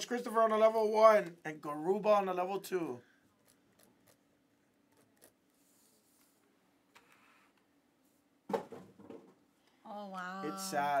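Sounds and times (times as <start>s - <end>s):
man exclaiming: 10.4s - 11.0s.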